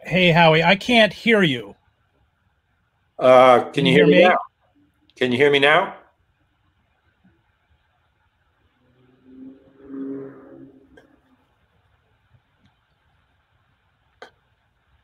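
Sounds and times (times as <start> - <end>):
faint passing vehicle hum: 8.8 - 11.4.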